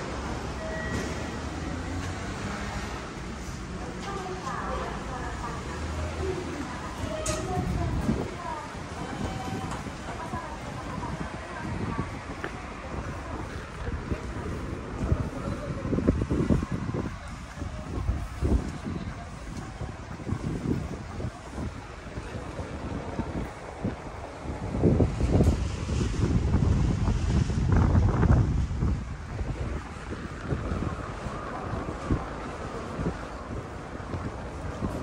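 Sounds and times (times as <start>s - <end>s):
wind gusts buffeting microphone: 1.3s - 35.0s.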